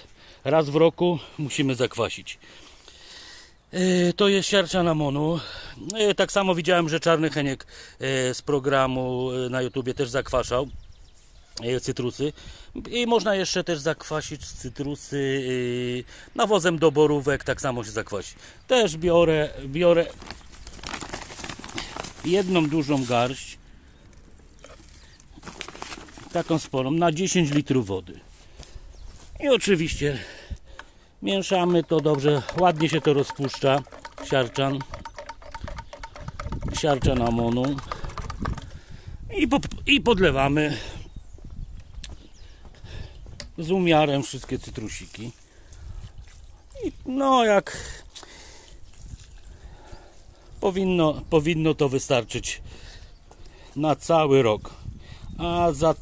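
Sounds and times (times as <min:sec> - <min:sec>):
water trickling into soil: 0:31.2 - 0:38.3
granules dropping into plastic can: 0:31.7 - 0:38.7.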